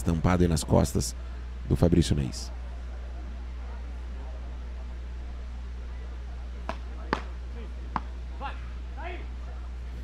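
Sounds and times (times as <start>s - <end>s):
faint distant voices: 0.0s - 10.0s
steady low hum: 0.0s - 10.0s
paddle striking ball: 7.9s - 8.1s.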